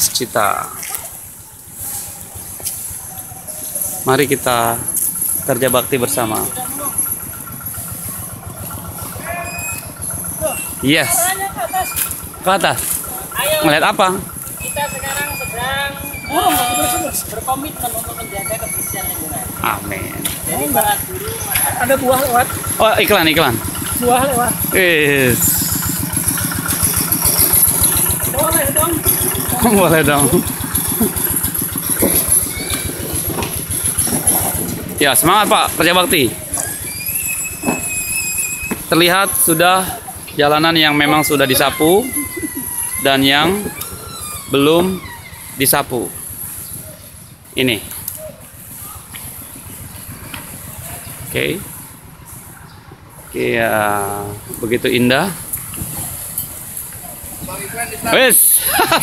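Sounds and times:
engine running with low pulse: 0.0s - 59.0s.

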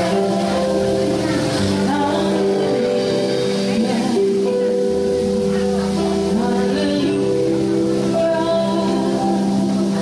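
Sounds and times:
live band through amplifiers: 0.0s - 10.0s.

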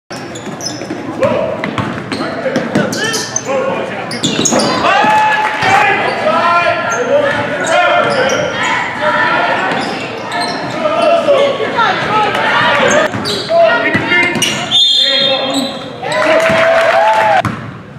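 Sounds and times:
sneakers squeaking: 0.1s - 16.6s.

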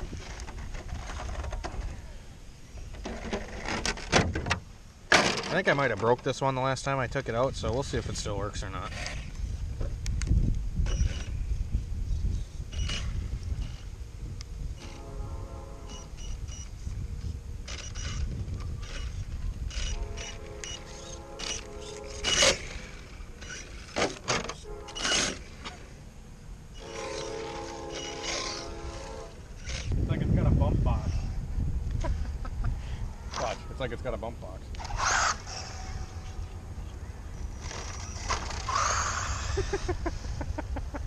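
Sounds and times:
wind rumble on microphone: 0.0s - 4.6s, 7.0s - 23.0s, 28.6s - 41.0s
electric motor buzzing hum: 10.8s - 30.0s, 34.7s - 36.7s, 37.4s - 40.0s.

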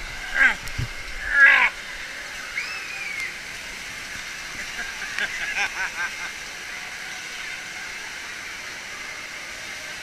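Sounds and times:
person squealing: 0.3s - 0.6s.

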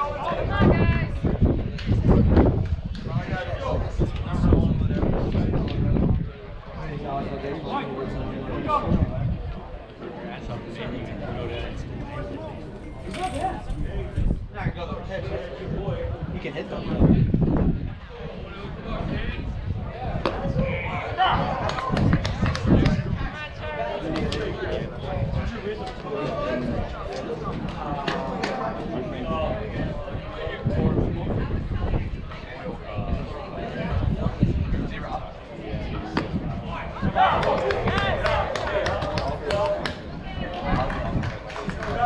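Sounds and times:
people talking indistinctly: 0.0s - 42.0s
voices calling out and chattering: 0.0s - 42.0s.

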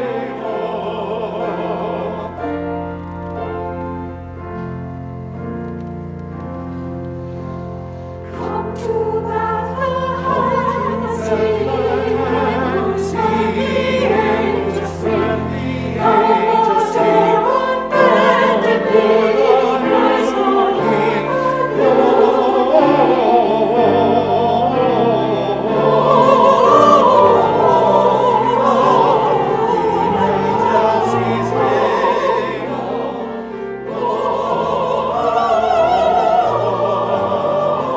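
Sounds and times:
church choir singing: 0.0s - 37.9s.

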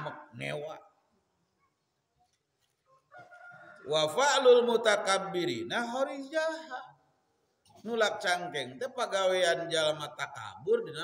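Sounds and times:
man's voice: 0.0s - 0.9s, 3.9s - 7.0s, 7.8s - 11.0s.

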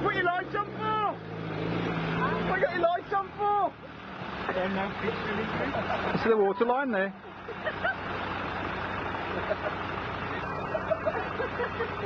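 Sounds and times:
vehicle engine running at low revs: 0.0s - 12.0s.

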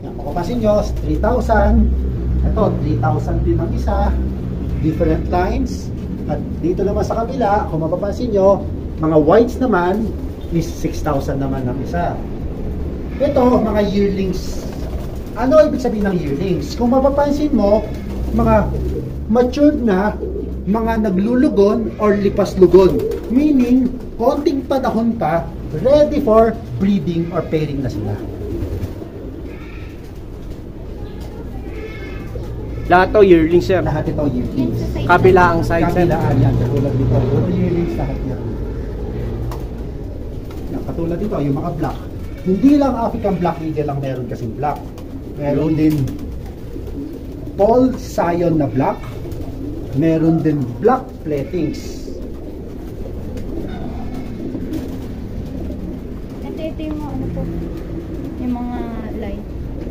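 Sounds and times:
pigeons cooing: 0.0s - 59.9s.

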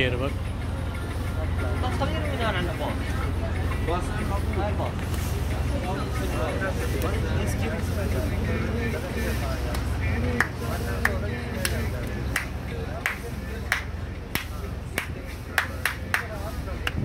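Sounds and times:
boat engine humming: 0.0s - 17.0s.

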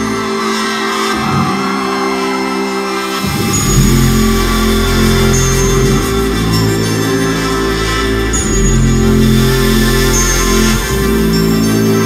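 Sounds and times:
live band sustained chords: 0.0s - 12.0s
deep heavy bass notes: 3.2s - 12.0s.

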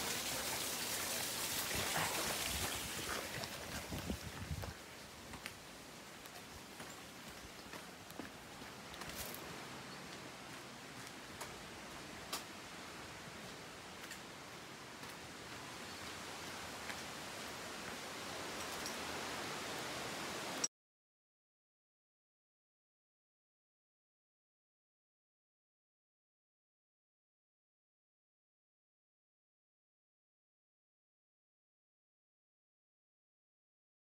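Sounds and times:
steady outdoor hiss: 0.0s - 20.7s
footsteps on dirt and dry leaves: 6.2s - 11.2s.

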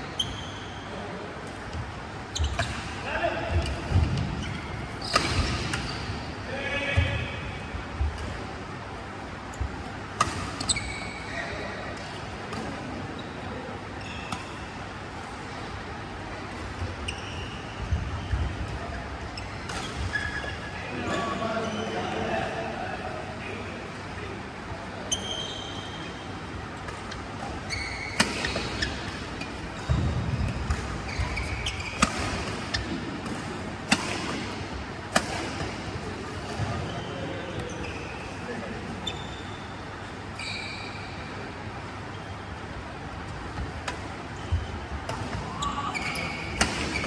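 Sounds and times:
shoe squeak: 0.0s - 1.0s, 2.2s - 2.8s, 3.6s - 7.0s, 10.2s - 12.3s, 14.0s - 14.7s, 16.8s - 22.1s, 25.0s - 26.3s, 27.5s - 33.0s, 36.6s - 41.3s, 44.3s - 44.9s, 45.5s - 47.0s
racket hitting shuttlecock: 5.0s - 5.9s, 26.8s - 36.8s, 46.4s - 47.0s
high thin squeak: 10.4s - 11.4s, 25.1s - 26.1s, 40.4s - 41.2s.

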